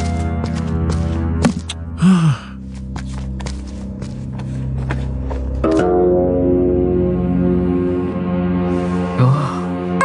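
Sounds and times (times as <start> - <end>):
soft background music: 0.0 - 10.0
person sighing: 2.0 - 2.6, 9.1 - 9.8.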